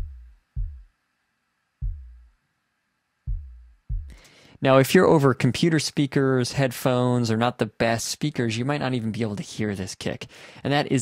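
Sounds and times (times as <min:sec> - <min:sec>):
synthesized kick drum thumps: 0:00.0 - 0:00.9, 0:01.8 - 0:02.4, 0:03.3 - 0:04.2.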